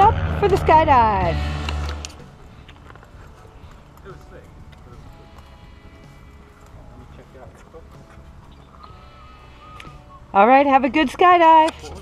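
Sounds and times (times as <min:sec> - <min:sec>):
low rumble: 0:00.0 - 0:02.6.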